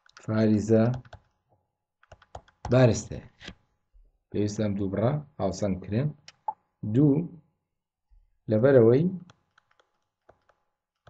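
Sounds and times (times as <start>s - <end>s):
man speaking: 6.8s - 7.3s.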